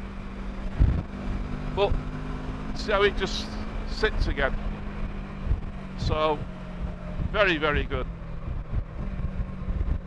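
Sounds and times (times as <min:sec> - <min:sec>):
wind rumble on microphone: 0:00.0 - 0:02.7, 0:04.1 - 0:10.0
motorcycle engine running: 0:00.0 - 0:10.0.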